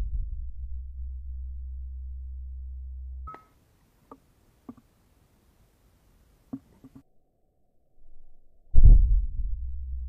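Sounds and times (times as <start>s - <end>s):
low steady hum: 0.0s - 7.0s
brief beep: 3.3s - 3.5s
faint hiss: 3.3s - 7.0s.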